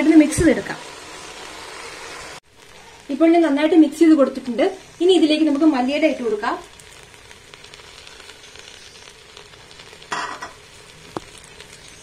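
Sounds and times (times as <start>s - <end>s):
food sizzling in a pot: 0.0s - 12.0s.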